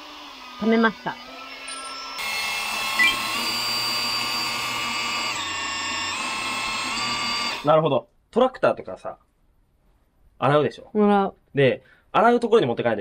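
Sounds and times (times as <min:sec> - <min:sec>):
pressure washer motor whine: 0:00.0 - 0:07.6.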